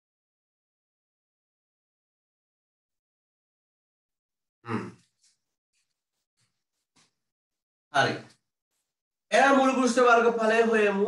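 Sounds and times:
man sighing: 4.7s - 5.0s.

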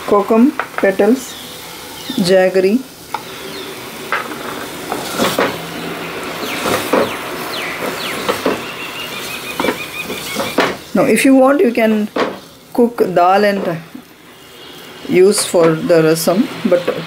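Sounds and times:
paste sizzling in a pot: 0.0s - 17.0s
wooden spoon scraping a pot: 4.1s - 5.8s.

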